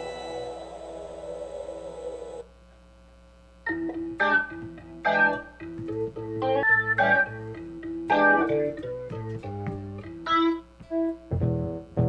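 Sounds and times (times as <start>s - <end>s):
keyboard organ playing slow line: 0.0s - 2.5s.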